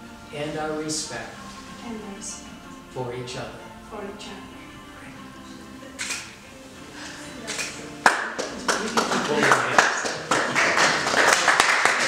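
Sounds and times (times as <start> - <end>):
soft music: 0.0 - 12.0
hand clapping: 7.5 - 12.0.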